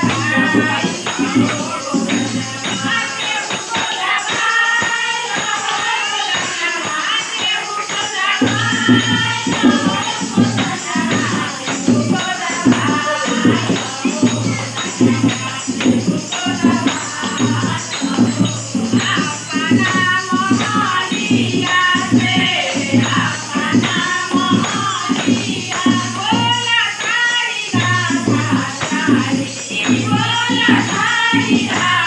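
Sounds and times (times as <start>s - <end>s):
dholak drum beat: 0.0s - 32.0s
hand-clapping: 0.0s - 32.0s
women singing devotional song: 0.0s - 32.0s.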